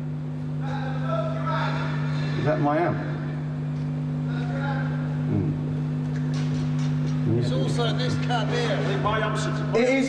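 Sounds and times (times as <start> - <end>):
amplifier mains hum: 0.0 - 10.0.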